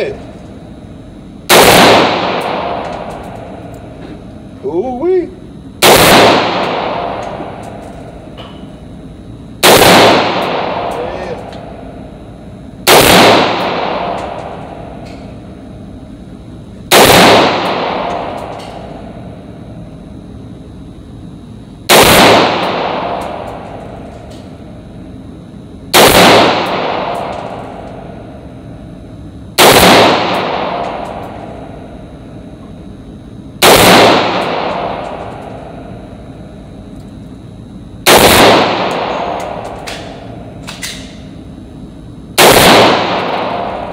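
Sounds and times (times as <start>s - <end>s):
rifle shots echoing indoors: 1.3s - 4.3s, 5.7s - 8.9s, 9.5s - 20.8s, 21.8s - 25.1s, 25.8s - 32.5s, 33.6s - 43.9s.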